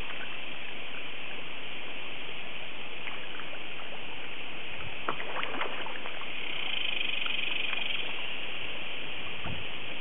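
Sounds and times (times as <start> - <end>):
fish splashing and slurping: 0.0 - 10.0
steady hiss: 0.0 - 10.0.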